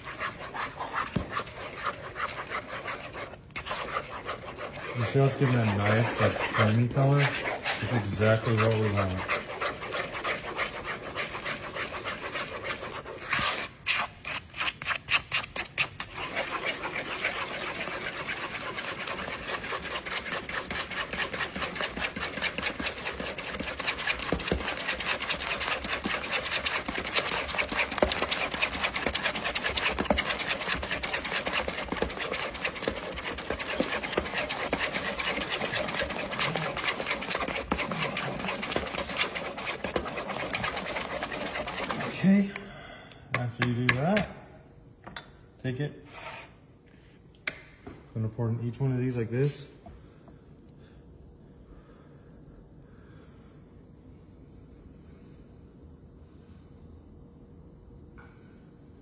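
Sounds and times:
spatula stirring batter in bowl: 0.0s - 42.7s.

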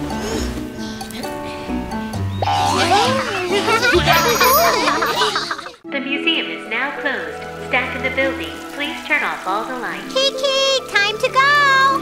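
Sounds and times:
cartoon background music: 0.0s - 12.0s.

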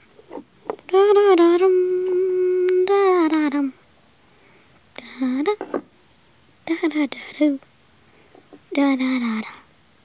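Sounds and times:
person humming: 0.9s - 3.7s.

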